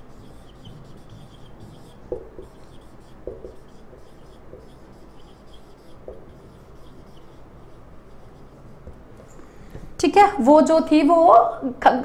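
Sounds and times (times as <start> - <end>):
marker writing on whiteboard: 0.0 - 9.9.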